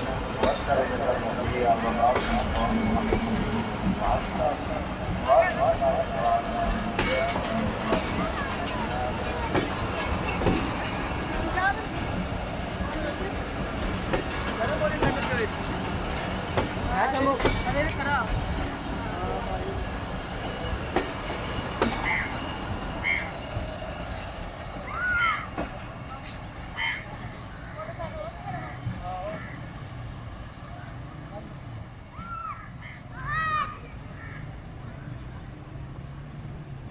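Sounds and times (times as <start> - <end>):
train wheels knocking over rail joints: 0.0 - 19.0, 20.0 - 26.0
faint voices: 0.0 - 36.0
crow cawing: 22.0 - 22.4, 23.0 - 23.4, 25.1 - 25.5, 26.8 - 27.1, 34.1 - 34.5.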